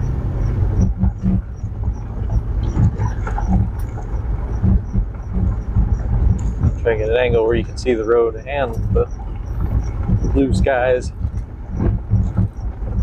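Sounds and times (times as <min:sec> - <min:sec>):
engine and tyres rumbling: 0:00.0 - 0:13.0
knocks and rattles from rough road: 0:00.0 - 0:13.0.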